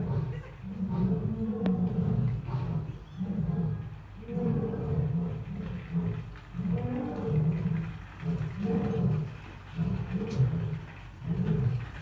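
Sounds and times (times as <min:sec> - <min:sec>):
lion roaring: 0:00.0 - 0:12.0.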